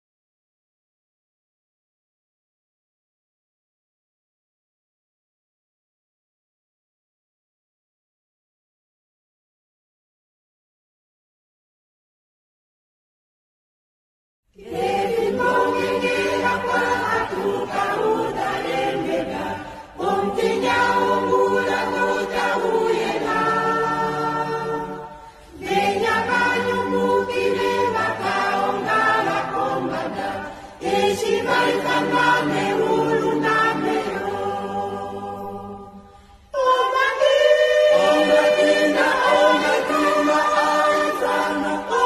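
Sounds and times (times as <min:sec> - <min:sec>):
choir singing gospel song: 0:14.6 - 0:42.0.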